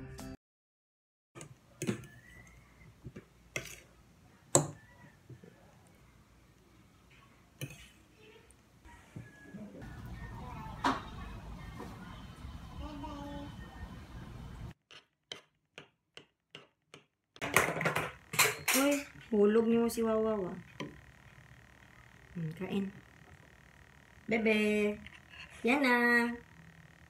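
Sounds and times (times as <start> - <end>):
utensils clinking on ceramic plate: 17.5 - 19.2.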